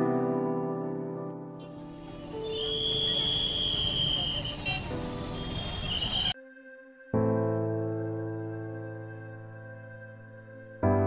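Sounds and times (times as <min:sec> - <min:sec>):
vehicle engines: 0:01.8 - 0:06.4
short high toot: 0:02.3 - 0:06.4.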